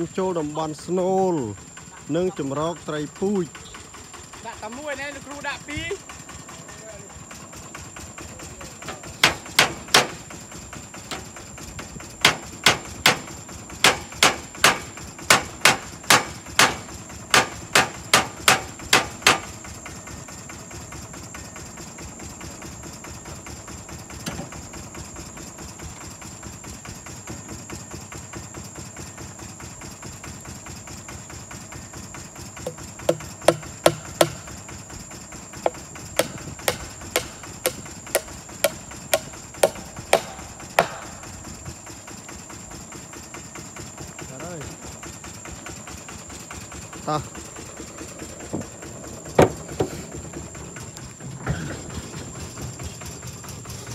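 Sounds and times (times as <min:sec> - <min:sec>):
hammer striking nails: 0:09.2 - 0:10.2, 0:12.2 - 0:19.5, 0:32.7 - 0:34.5, 0:35.7 - 0:41.2.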